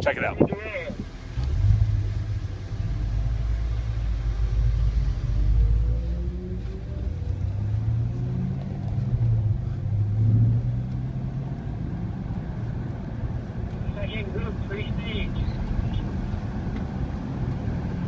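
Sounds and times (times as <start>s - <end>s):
car engine rumble inside cabin: 0.0s - 18.0s.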